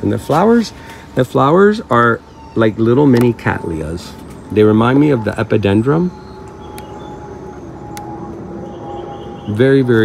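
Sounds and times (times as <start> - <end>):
motor-like drone: 4.3 - 10.0.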